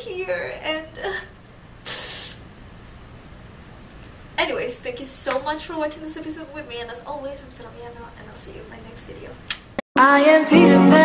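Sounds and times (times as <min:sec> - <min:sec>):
woman breathy exhale: 0:01.8 - 0:02.4.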